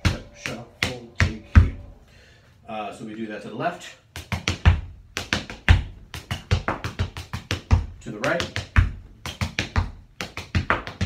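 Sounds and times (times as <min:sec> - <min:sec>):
tap shoes on tap board: 0:04.2 - 0:11.0.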